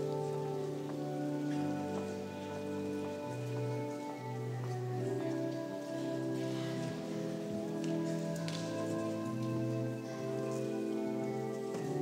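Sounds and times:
church organ chords: 0.0s - 12.0s
people shuffling and clicking: 0.0s - 12.0s.

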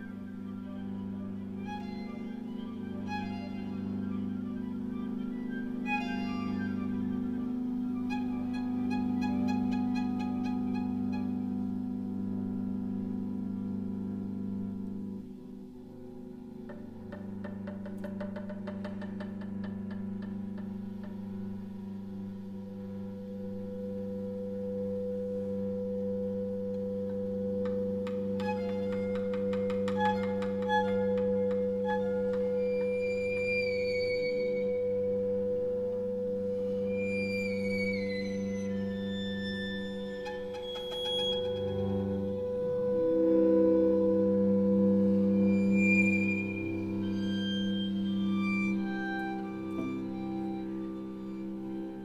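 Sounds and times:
clarinet and string quartet: 0.0s - 15.8s, 20.6s - 52.0s.

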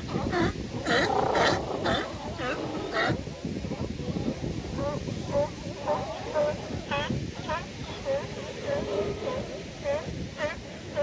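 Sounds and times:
sea lions barking: 0.1s - 3.3s.

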